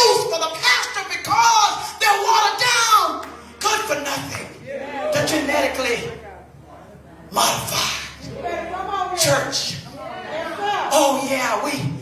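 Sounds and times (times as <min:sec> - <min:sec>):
woman preaching through microphone: 0:00.0 - 0:12.0.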